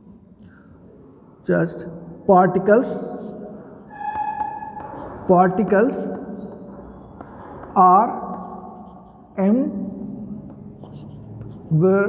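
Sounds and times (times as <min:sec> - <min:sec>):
chalk scratching on blackboard: 0:03.0 - 0:09.6, 0:10.4 - 0:12.0
light chalk taps: 0:05.9 - 0:09.1, 0:10.4 - 0:11.7.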